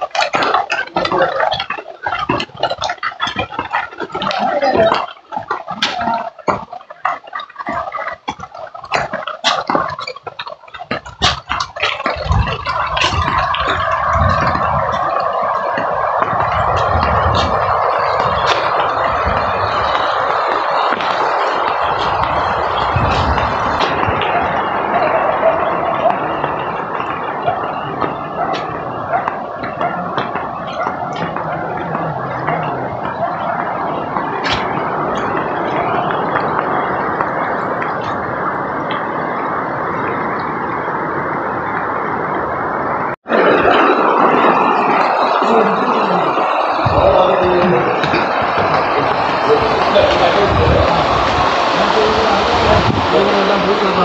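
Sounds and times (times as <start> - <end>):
floodwater stream rushing: 0.0 - 54.0.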